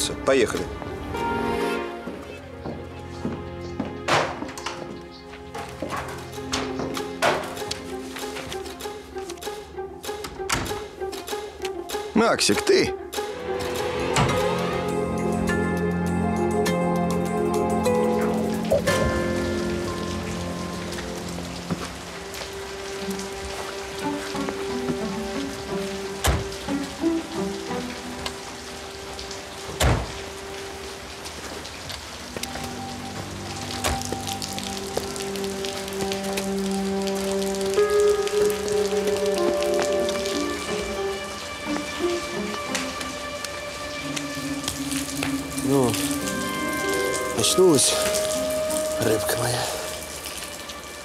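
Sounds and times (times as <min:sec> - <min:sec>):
rain on wet pavement: 0:00.0 - 0:01.8, 0:02.5 - 0:09.8, 0:13.3 - 0:51.0
soft background music: 0:00.0 - 0:51.0.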